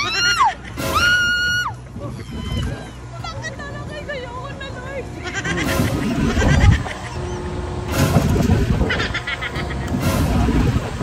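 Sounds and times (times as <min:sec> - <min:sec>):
riders laughing: 0:00.0 - 0:01.0, 0:05.0 - 0:11.0
wavering cries: 0:00.0 - 0:07.9, 0:08.7 - 0:10.0
low wind rumble: 0:00.0 - 0:11.0.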